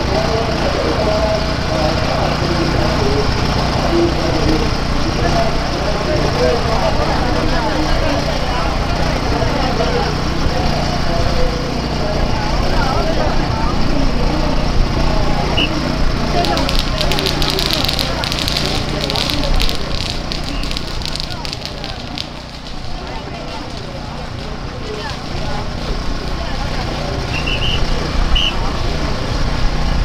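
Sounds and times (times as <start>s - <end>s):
crowd talking: 0.0s - 30.0s
small engine humming: 0.0s - 30.0s.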